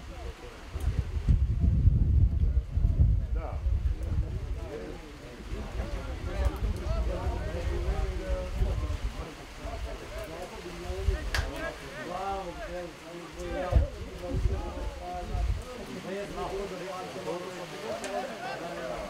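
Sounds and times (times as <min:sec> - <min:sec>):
wind rumble on microphone: 0:00.0 - 0:11.8, 0:13.4 - 0:15.8
people calling and shouting: 0:03.0 - 0:19.0.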